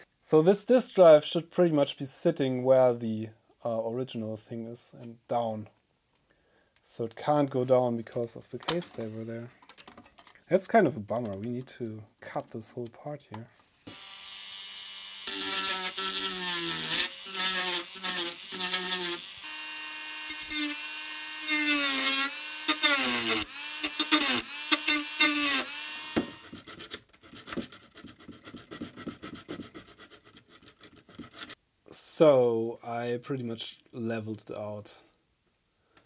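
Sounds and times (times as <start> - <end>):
plastic scraping and clicking: 8.6 - 10.4
rotary tool motor whining: 13.9 - 26.5.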